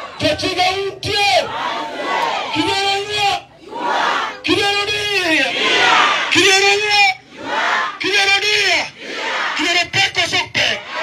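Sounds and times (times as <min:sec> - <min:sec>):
crowd chanting in unison: 0:01.4 - 0:02.7, 0:03.4 - 0:04.5, 0:05.4 - 0:06.4, 0:07.3 - 0:08.0, 0:08.8 - 0:09.6, 0:10.7 - 0:11.0.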